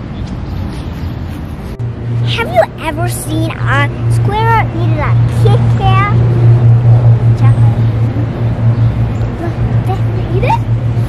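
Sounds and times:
low fluttering engine drone: 1.2s - 11.0s
child's voice: 2.2s - 6.3s, 7.3s - 7.9s, 9.3s - 11.0s.

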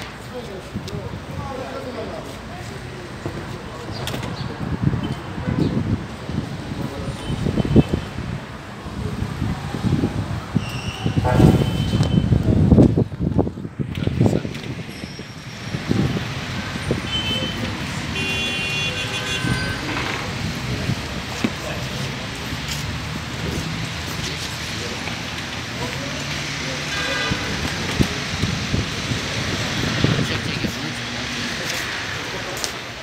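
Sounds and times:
vehicles passing: 0.0s - 33.0s.

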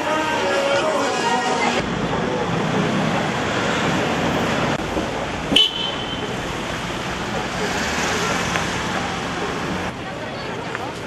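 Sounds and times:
crowd noise: 0.0s - 11.0s
steady traffic: 0.0s - 11.0s.

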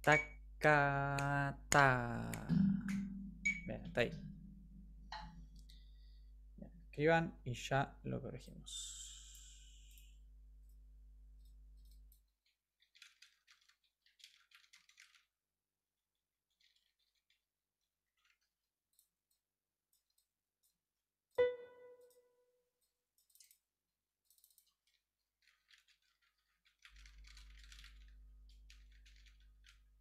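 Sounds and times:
faint scratching and rustling: 16.5s - 18.6s.

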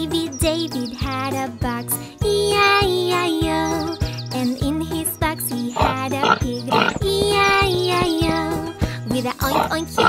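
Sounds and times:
children's song music: 0.0s - 10.0s
pig oinking: 5.8s - 8.5s, 9.3s - 10.0s.

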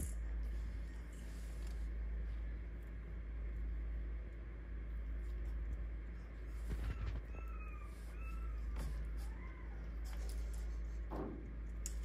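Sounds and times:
puppy whining: 6.6s - 10.9s.

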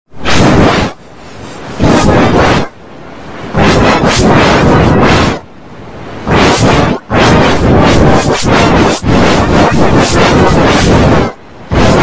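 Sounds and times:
distorted whooshing noise: 0.1s - 12.0s.

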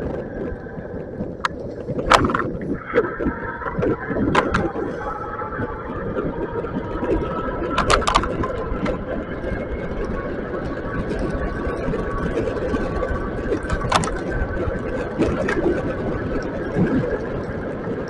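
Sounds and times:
wind and tyres rumbling: 0.0s - 18.0s.

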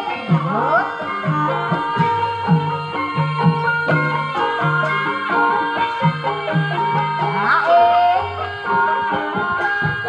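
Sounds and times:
high voice singing: 0.0s - 2.2s, 7.2s - 8.8s
ringing gong ensemble tones: 0.0s - 10.0s.

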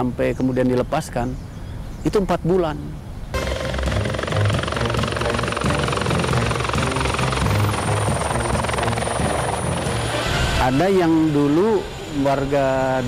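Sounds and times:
helicopter high whine: 3.4s - 13.0s
helicopter rotor noise: 3.4s - 13.0s.

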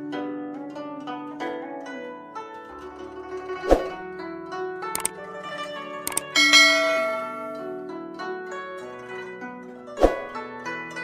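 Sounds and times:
plucked zither-like music: 0.0s - 11.0s
double mouse click: 6.1s - 6.3s
bright bell chime: 6.2s - 7.8s.

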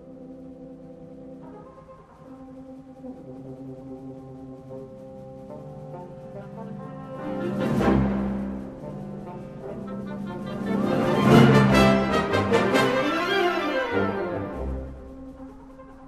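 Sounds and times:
wind orchestra playing: 0.0s - 16.0s.

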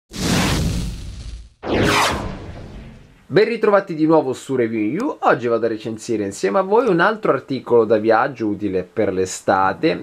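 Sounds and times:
swoosh sound effects: 1.6s - 3.3s.

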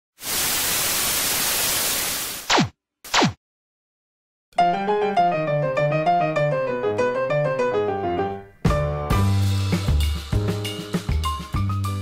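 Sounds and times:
tv static hiss: 0.2s - 2.5s.

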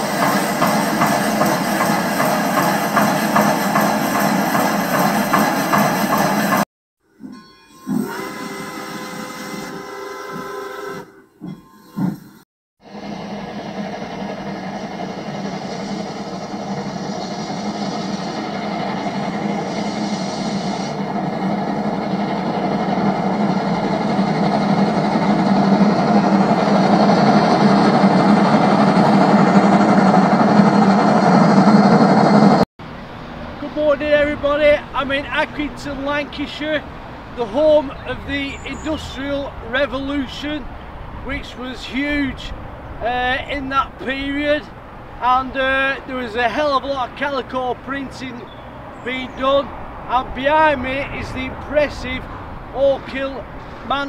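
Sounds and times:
dense machine noise: 0.0s - 6.6s, 12.8s - 40.1s
steam hissing: 0.0s - 6.6s, 7.2s - 32.5s.

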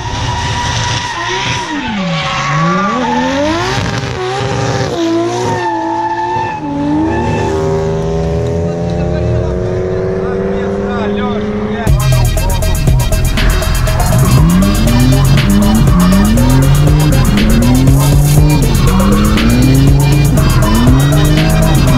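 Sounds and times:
drift car engines revving: 0.0s - 21.9s
music: 11.9s - 21.9s.

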